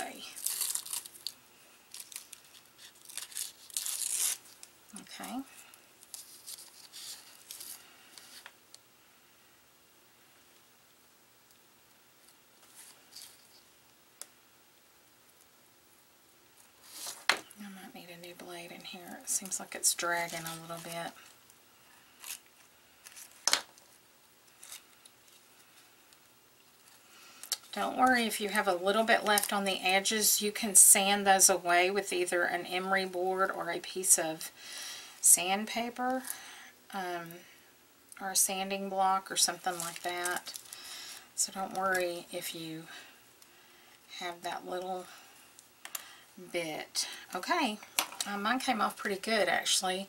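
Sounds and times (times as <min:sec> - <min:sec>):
tissue paper rustling: 0:00.0 - 0:08.5, 0:16.8 - 0:17.3, 0:39.3 - 0:42.2.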